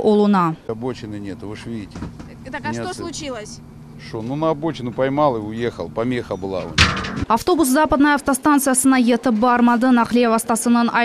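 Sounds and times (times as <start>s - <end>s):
steady low hum: 0.7s - 7.4s.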